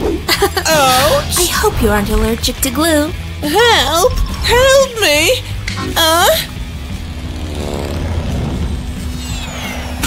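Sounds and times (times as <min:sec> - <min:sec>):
low whooshing rumble: 0:06.4 - 0:10.0.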